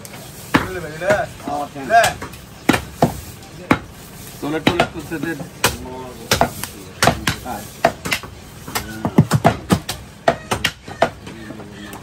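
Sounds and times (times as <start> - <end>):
cleaver chopping meat on wood: 0.4 - 11.4.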